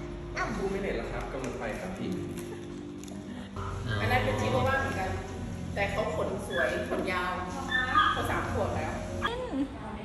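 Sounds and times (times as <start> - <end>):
small dog whining and yipping: 7.7 - 8.4.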